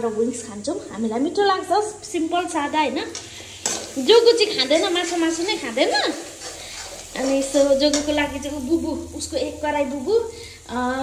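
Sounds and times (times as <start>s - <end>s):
paste frying and sizzling: 0.0s - 11.0s
spatula scraping metal pan: 3.4s - 8.4s.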